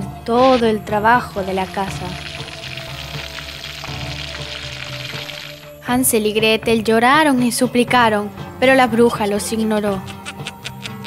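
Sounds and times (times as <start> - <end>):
soft background music: 0.0 - 11.0
food sizzling in a pan: 0.4 - 5.8.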